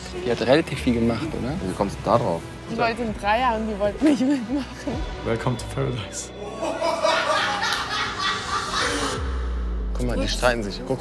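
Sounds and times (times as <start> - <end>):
background music: 0.0 - 11.0
people laughing: 6.4 - 9.2.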